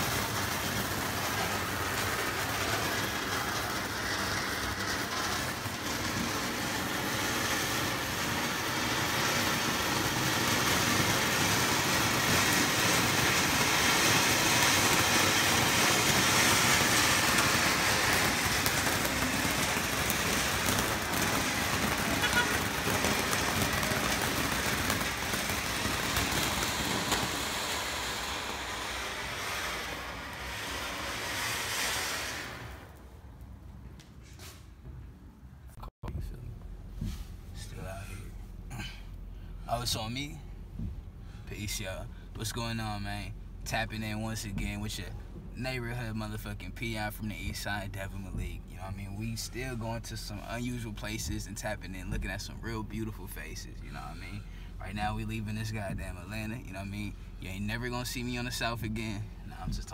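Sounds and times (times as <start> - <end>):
fireworks rushing hiss: 0.0 - 33.4, 49.0 - 59.9
firework cracks: 0.0 - 34.1.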